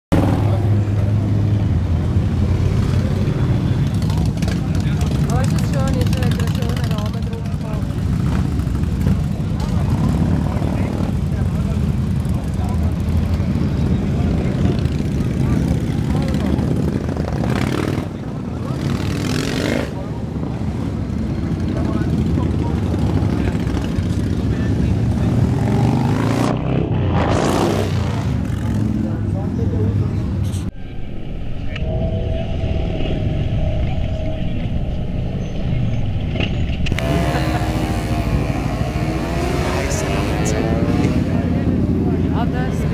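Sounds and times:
motorcycle engines running: 0.1s - 30.7s, 31.7s - 42.9s
people's voices: 0.1s - 42.9s
background voices: 29.2s - 42.9s
rush of noise: 30.2s - 42.9s.

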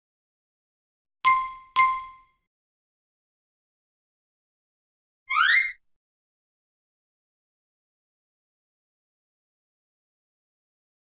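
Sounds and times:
cartoon upward sweeping tone: 5.3s - 5.8s.

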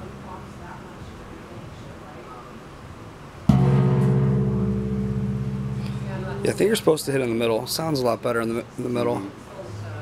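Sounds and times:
brass gong ringing: 3.5s - 7.4s.

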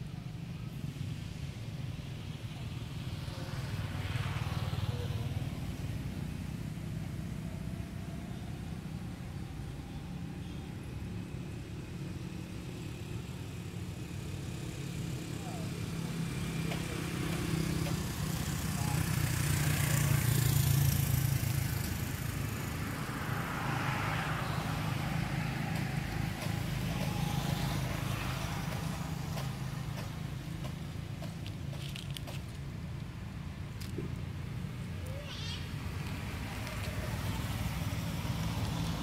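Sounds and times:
motor vehicle engine hum: 0.0s - 39.0s.

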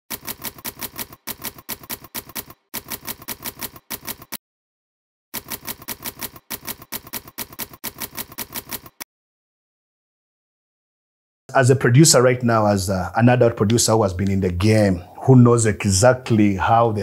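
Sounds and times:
typewriter keys striking: 0.1s - 4.4s, 5.4s - 9.0s.

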